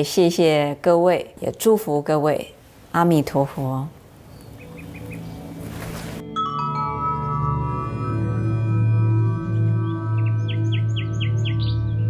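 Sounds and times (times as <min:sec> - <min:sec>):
bird chirping: 0:04.2 - 0:05.6, 0:09.8 - 0:12.0
soft background music drone: 0:04.3 - 0:12.0.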